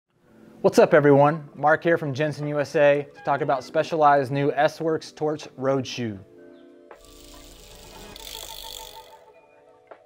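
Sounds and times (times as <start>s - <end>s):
held music tones: 7.0s - 9.4s.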